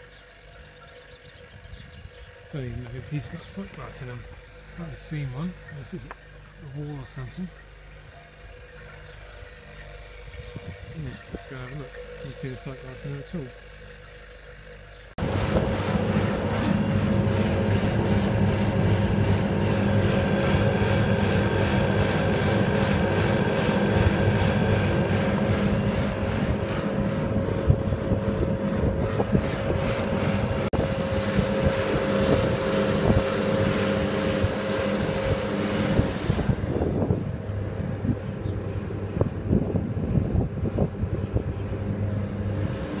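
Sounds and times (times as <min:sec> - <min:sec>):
compressor humming: 0:00.0 - 0:43.0
steady whine: 0:00.0 - 0:43.0
wind buffeting microphone: 0:15.2 - 0:43.0.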